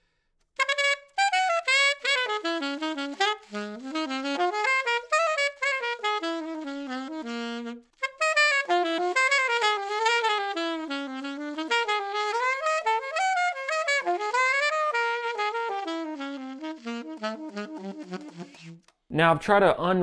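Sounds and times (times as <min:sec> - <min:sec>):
short breath: 0:00.0 - 0:00.4
saxophone playing jazz: 0:00.6 - 0:18.9.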